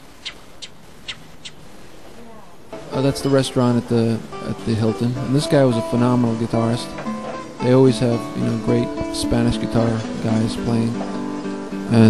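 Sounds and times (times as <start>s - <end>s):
wren harsh rasping calls: 0.2s - 1.6s.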